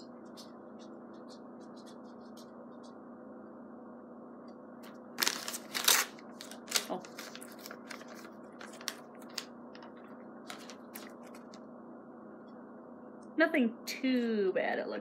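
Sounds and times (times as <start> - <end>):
paper booklet rustling: 5.2 - 11.6.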